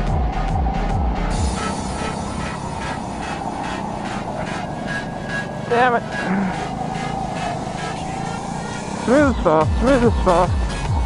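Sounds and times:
faint steady note: 0:00.0 - 0:11.0
go-kart motor and rolling noise: 0:00.0 - 0:11.0.

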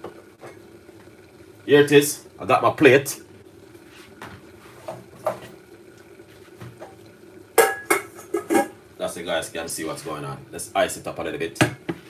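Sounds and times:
plates and pots clattering: 0:07.6 - 0:08.8.

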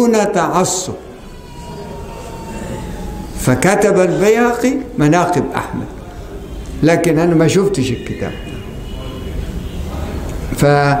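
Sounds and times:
faint high tone: 0:01.1 - 0:04.6.

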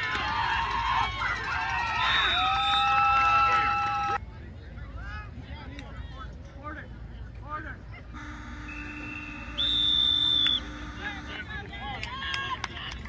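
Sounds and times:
people's voices: 0:04.2 - 0:13.0
faint steady whistle tone: 0:08.2 - 0:11.4
referee's whistle blast: 0:08.2 - 0:11.5.

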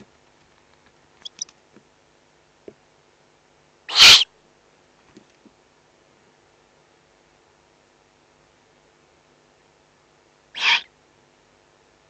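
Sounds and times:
owl chick rasping call: 0:01.2 - 0:01.5, 0:03.9 - 0:04.3, 0:10.6 - 0:10.9.

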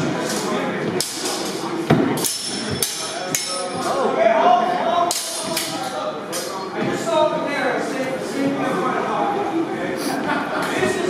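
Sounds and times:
metallic ring: 0:02.2 - 0:03.8
steel swords clashing: 0:02.2 - 0:04.0.

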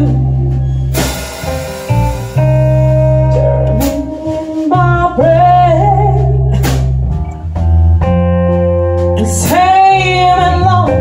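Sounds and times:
woman singing: 0:00.0 - 0:00.7, 0:03.4 - 0:06.9, 0:09.1 - 0:11.0
bass notes: 0:00.0 - 0:11.0
electric guitar: 0:00.0 - 0:11.0.

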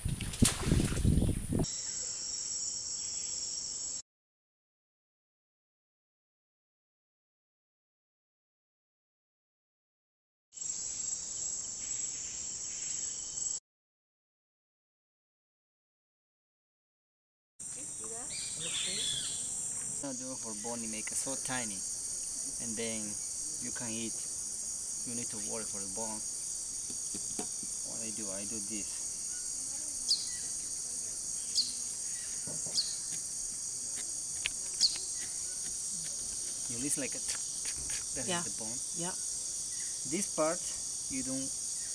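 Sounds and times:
high-pitched insect chorus: 0:01.6 - 0:04.0, 0:10.6 - 0:13.6, 0:17.6 - 0:41.9.

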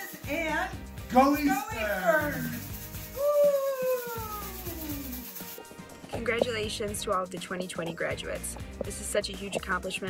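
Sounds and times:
faint background music: 0:00.0 - 0:10.0
person cheering shout: 0:03.1 - 0:05.2.

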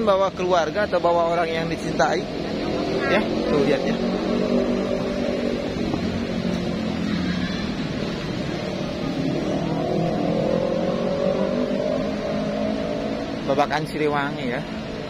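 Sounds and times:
vehicle engine droning: 0:00.0 - 0:15.0.

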